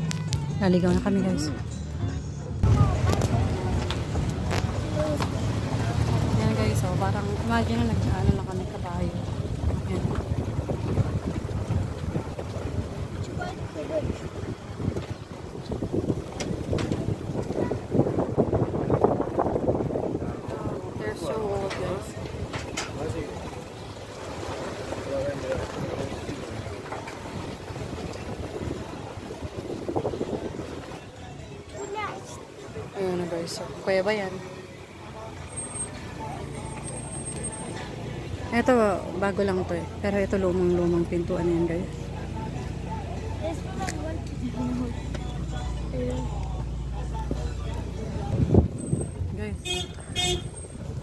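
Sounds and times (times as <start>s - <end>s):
car rumbling slowly: 0.0s - 33.0s, 34.4s - 51.0s
wind buffeting microphone: 2.6s - 23.6s, 25.4s - 31.2s, 48.0s - 51.0s
background voices: 30.4s - 49.6s.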